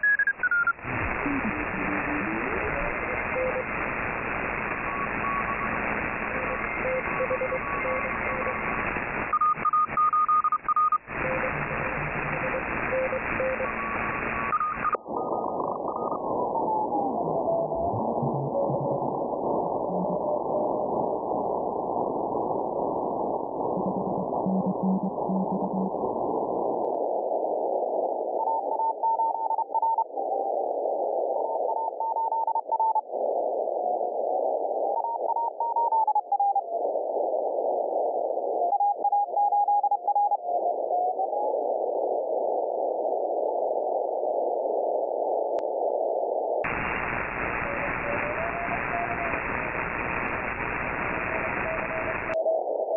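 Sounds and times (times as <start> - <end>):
radio receiver hiss: 0.0 - 10.0, 10.6 - 16.2, 44.7 - 52.9
morse code beeping tone: 9.3 - 11.0.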